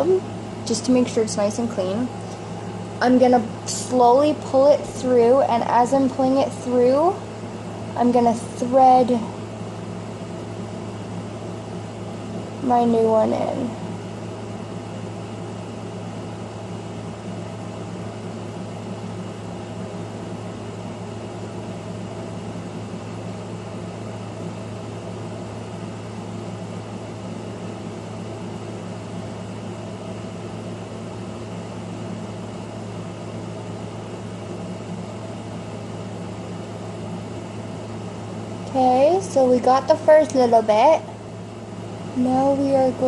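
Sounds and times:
low machine hum: 0:00.0 - 0:43.0.

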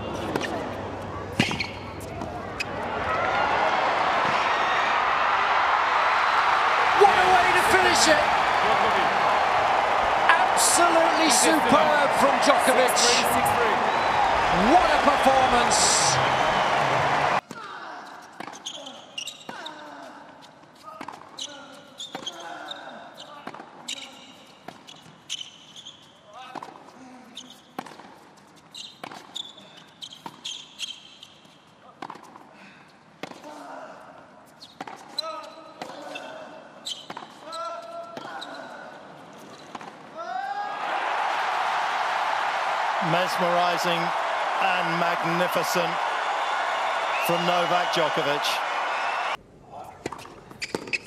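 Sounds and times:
shoes squeaking on court: 0:00.0 - 0:02.9, 0:18.0 - 0:32.4, 0:34.4 - 0:40.1, 0:50.0 - 0:51.0
crowd cheering and applauding: 0:02.7 - 0:17.4, 0:40.7 - 0:49.4.

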